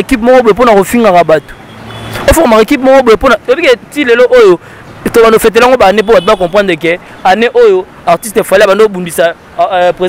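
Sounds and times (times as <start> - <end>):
man talking into microphone: 0.0 - 10.0.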